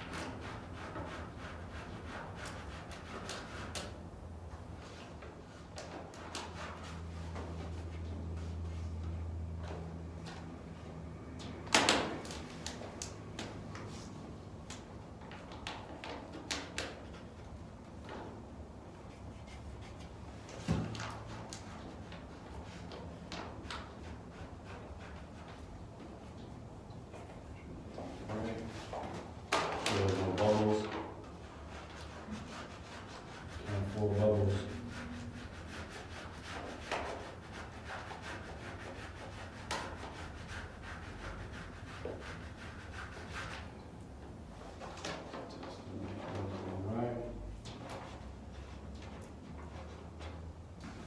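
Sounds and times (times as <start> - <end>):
scraping rubs on glass: 0.0 - 4.0, 18.9 - 25.8, 28.5 - 43.8.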